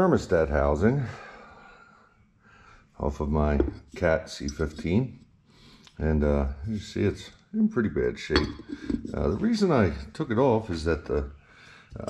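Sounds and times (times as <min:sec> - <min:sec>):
man talking: 0:00.0 - 0:01.3, 0:03.0 - 0:05.2, 0:06.0 - 0:12.0
faint breath: 0:01.0 - 0:03.0, 0:08.7 - 0:09.1, 0:11.4 - 0:12.0.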